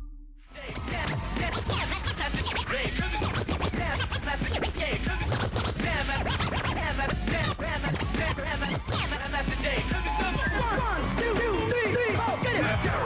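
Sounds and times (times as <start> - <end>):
low bass: 0.0 - 6.2
vinyl record scratching: 0.6 - 13.0.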